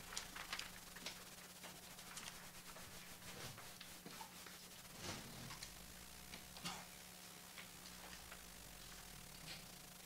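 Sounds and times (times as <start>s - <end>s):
paper rustling: 0.0s - 5.7s
steady low hum: 0.0s - 10.0s.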